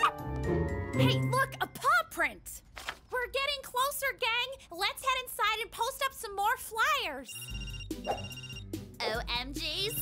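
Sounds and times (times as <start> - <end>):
background music: 0.0 - 2.3, 7.0 - 10.0
electronic telephone ringtone: 7.2 - 8.8, 9.8 - 10.0.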